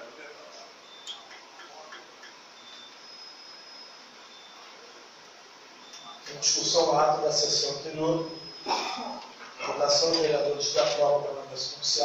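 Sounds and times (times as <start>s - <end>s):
faint high whine: 0.0s - 12.0s
room tone hiss: 0.0s - 12.0s.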